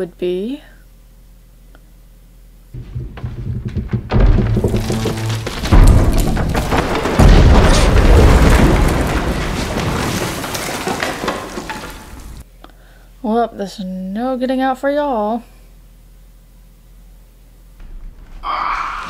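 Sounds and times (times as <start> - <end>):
heavy low booms: 2.8 - 9.4
dense crashing rumble: 2.8 - 12.4.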